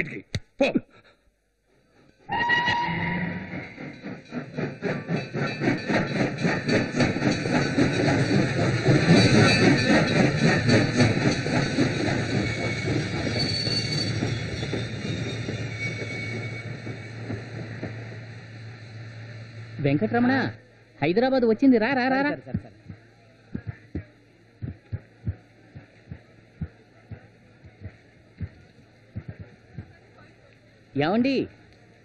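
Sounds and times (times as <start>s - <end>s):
steam locomotive chuffing: 2.0s - 24.0s
steam train whistle: 2.3s - 3.8s.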